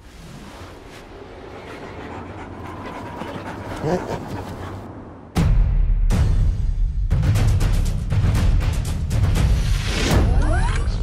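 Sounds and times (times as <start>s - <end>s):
dogs panting: 1.4s - 5.0s
dog rising vocal sound: 1.5s - 4.9s.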